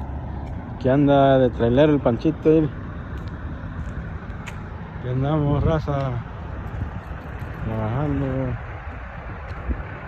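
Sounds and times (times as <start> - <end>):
rumble of vehicles: 0.0 - 10.0.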